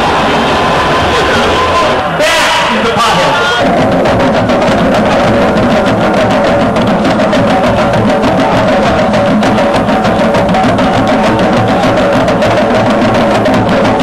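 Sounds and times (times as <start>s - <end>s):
steady drone: 0.0s - 14.0s
hand drums playing: 3.4s - 14.0s.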